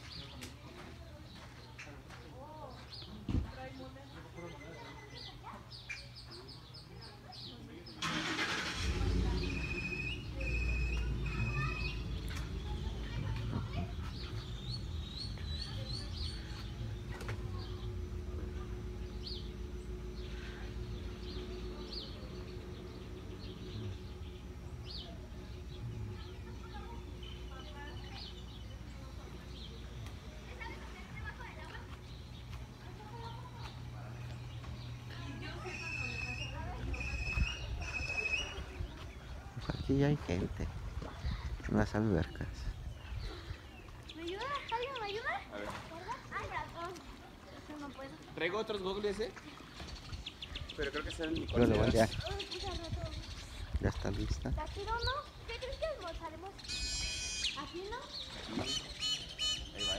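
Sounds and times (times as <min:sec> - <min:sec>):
distant indistinct voices: 0:00.0 - 0:59.9
faint rising and falling cries: 0:08.0 - 0:29.8
steady low hum: 0:08.7 - 0:59.9
wind rumbling on microphone: 0:36.8 - 0:41.8, 0:49.9 - 0:56.1.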